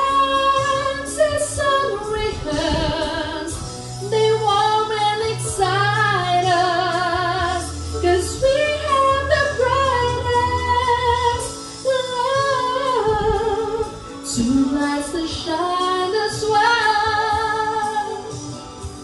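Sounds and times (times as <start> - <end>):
low backing bass: 0.0 - 16.0
woman singing into a microphone: 0.0 - 19.0.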